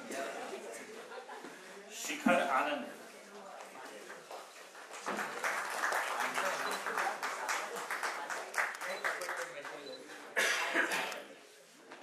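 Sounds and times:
person coughing: 10.4s - 11.2s.

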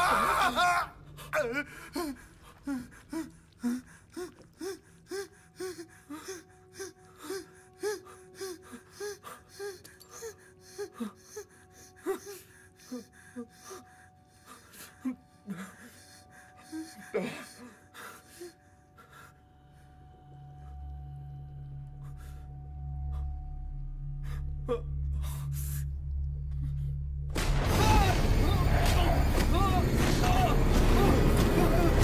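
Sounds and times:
faint musical drone: 0.0s - 32.0s.

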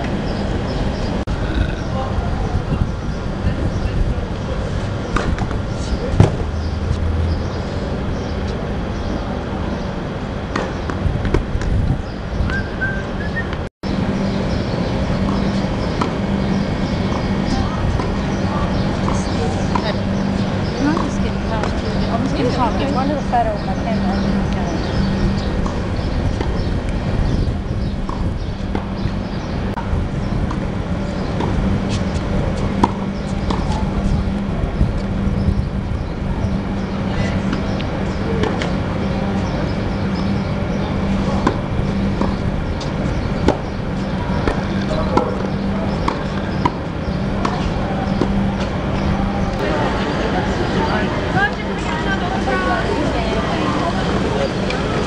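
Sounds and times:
spectator chatter: 0.0s - 7.0s, 14.2s - 28.2s, 30.6s - 55.0s
wind rumble on microphone: 0.0s - 55.0s.

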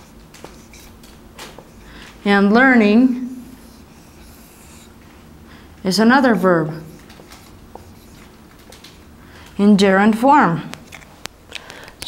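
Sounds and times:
marker scratching on whiteboard: 0.0s - 1.0s, 3.3s - 5.0s, 6.7s - 8.3s
woman speaking: 2.2s - 3.6s, 5.8s - 7.0s, 9.6s - 10.8s.

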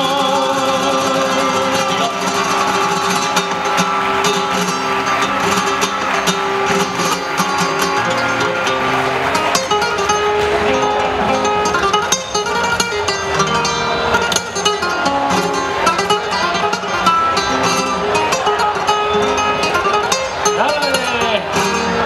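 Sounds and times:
flamenco acoustic guitar: 0.0s - 22.0s
person singing flamenco: 0.0s - 22.0s.

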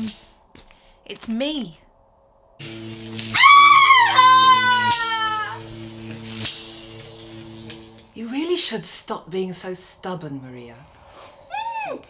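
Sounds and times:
dark music drone: 2.6s - 8.2s
woman screaming: 3.3s - 5.6s, 11.5s - 12.0s.

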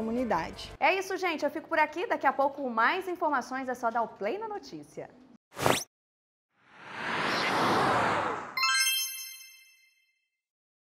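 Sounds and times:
bright bell-like chime: 8.6s - 10.2s.

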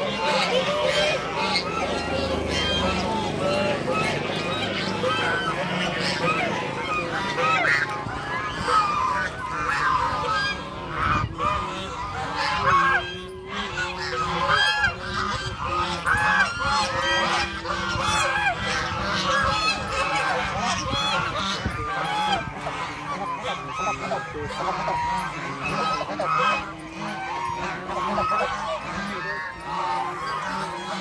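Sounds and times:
geese honking: 0.0s - 31.0s.

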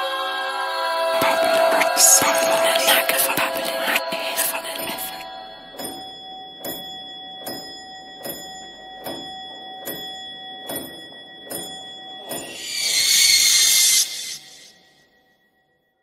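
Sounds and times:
high ringing tone: 12.3s - 14.8s
loud hiss: 12.5s - 14.7s.

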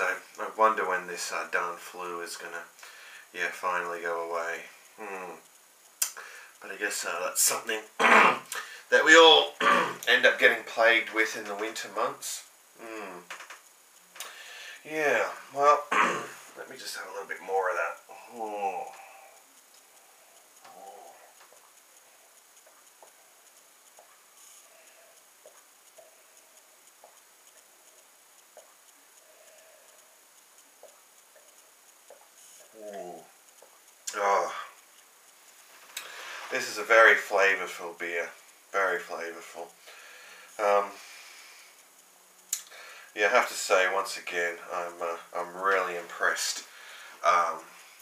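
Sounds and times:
faint room hiss: 0.0s - 48.0s
man swallowing: 8.0s - 8.7s, 9.6s - 10.1s, 15.8s - 16.6s.

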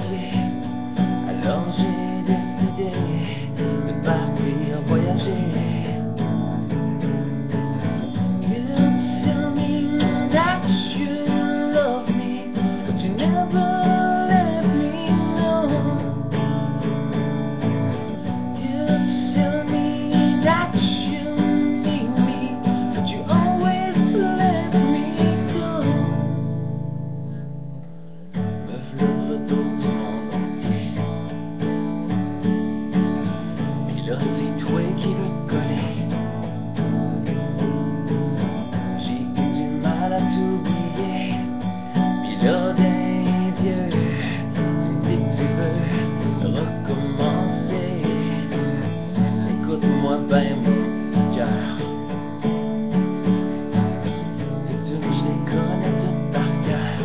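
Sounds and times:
acoustic guitar strumming: 0.0s - 57.0s.

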